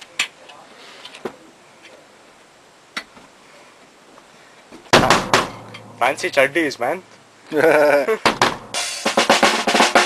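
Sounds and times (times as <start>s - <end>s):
drum kit hit ringing: 4.9s - 6.4s, 8.3s - 10.0s.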